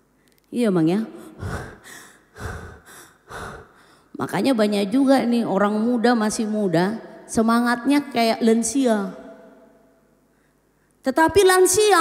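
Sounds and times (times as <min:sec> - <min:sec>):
woman panting heavily: 0:01.2 - 0:04.1.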